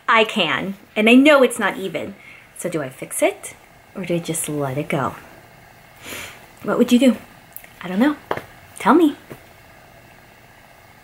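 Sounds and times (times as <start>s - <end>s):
woman speaking: 0.0s - 5.2s, 6.6s - 9.4s
faint hum: 0.0s - 11.0s.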